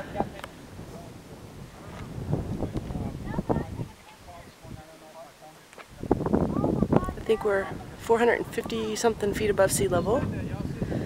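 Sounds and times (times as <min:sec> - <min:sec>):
wind buffeting microphone: 0:00.0 - 0:05.0, 0:05.9 - 0:11.0.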